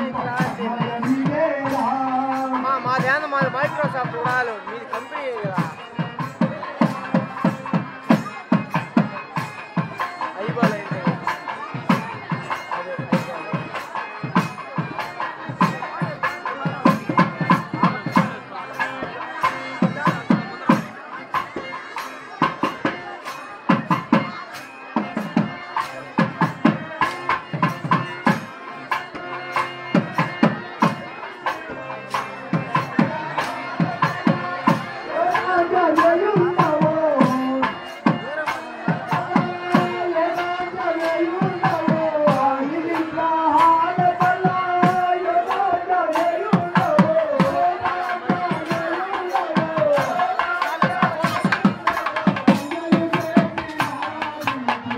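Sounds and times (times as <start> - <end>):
man singing into microphone: 0.0 - 7.9, 31.8 - 54.9
drums beating fast rhythm: 0.0 - 54.9.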